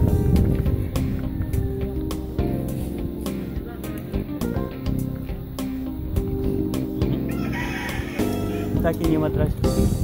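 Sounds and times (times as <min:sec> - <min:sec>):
rooster crowing: 0:07.3 - 0:08.7.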